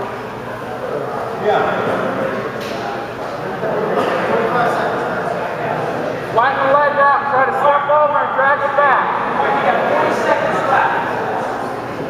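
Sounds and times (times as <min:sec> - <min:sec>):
gym hall hubbub: 0:00.0 - 0:12.0
men shouting: 0:06.4 - 0:11.5.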